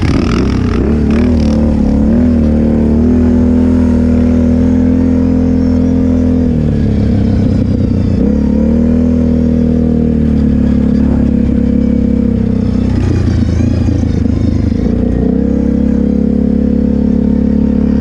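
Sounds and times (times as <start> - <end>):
quad engine running: 0.0 - 18.0.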